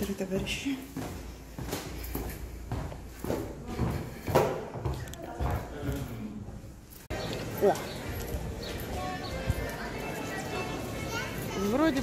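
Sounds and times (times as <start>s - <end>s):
footsteps on hard floor and stairs: 0.0s - 12.0s.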